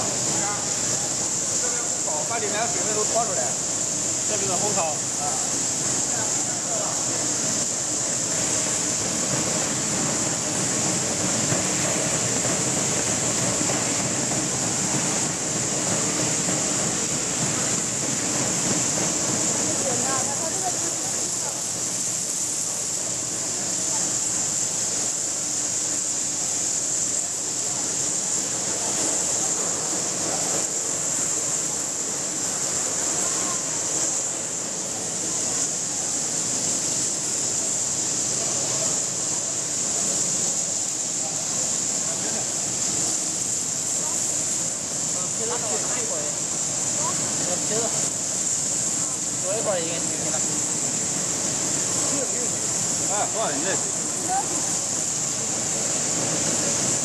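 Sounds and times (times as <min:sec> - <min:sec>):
food-processing machinery running: 0:00.0 - 0:57.0
high-pitched hiss: 0:00.0 - 0:57.0.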